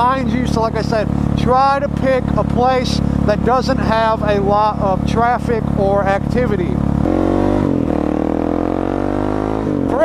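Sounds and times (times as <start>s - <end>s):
motorcycle engine accelerating: 0.0s - 10.0s.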